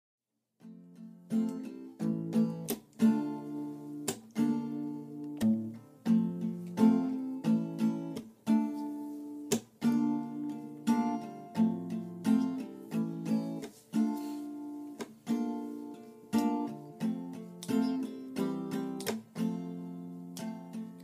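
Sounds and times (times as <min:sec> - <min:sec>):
acoustic guitar strumming chords: 0:00.6 - 0:21.0.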